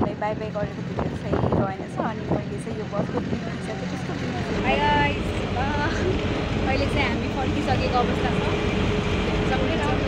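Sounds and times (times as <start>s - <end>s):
bus engine and road rumble: 0.0s - 10.0s
wind noise: 0.0s - 10.0s.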